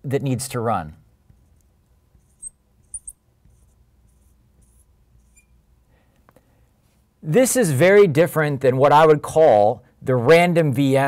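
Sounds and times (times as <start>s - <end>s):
marker scratchy strokes: 1.3s - 5.5s
marker squeaking on glass: 1.3s - 5.6s.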